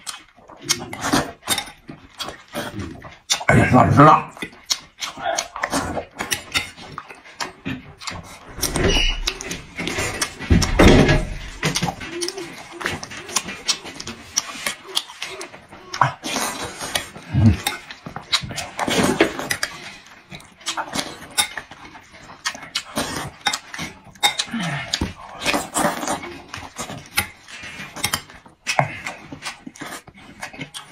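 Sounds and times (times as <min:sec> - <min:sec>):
wet mouth clicks: 0:00.0 - 0:03.5, 0:04.3 - 0:10.4, 0:11.6 - 0:19.8
man chewing and slurping: 0:00.0 - 0:30.9.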